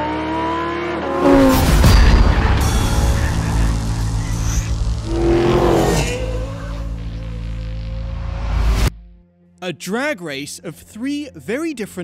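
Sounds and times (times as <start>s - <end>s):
car engine revving: 0.0s - 8.9s
slowly rising tone: 3.4s - 8.9s.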